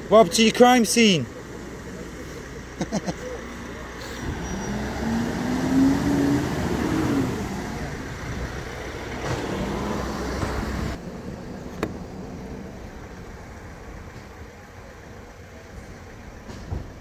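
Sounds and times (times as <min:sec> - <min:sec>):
traffic noise: 0:00.0 - 0:17.0
vehicle accelerating past: 0:03.6 - 0:11.0.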